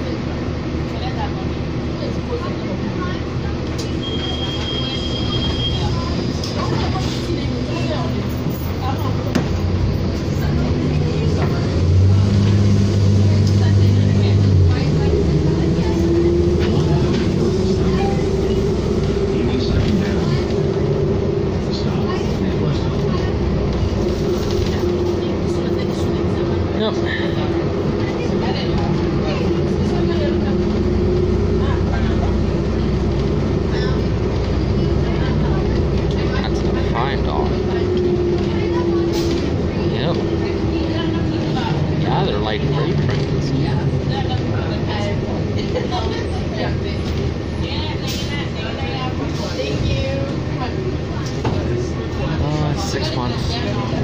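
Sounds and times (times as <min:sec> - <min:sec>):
bus engine hum: 0:00.0 - 0:54.0.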